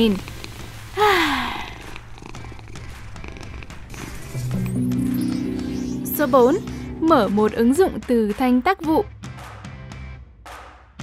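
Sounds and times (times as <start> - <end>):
cat purring: 1.5 - 4.4
background music: 2.6 - 10.8.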